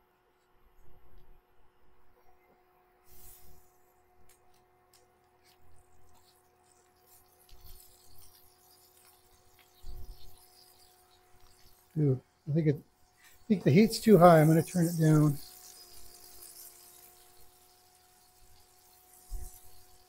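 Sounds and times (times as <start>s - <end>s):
cooktop hum: 0.0s - 20.0s
butter sizzling in a skillet: 3.1s - 3.8s, 5.2s - 20.0s.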